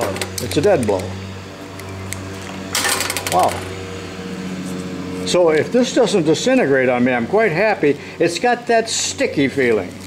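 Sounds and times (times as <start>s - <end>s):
steady low hum: 0.0s - 10.0s
plastic wrap crackling: 9.5s - 10.0s.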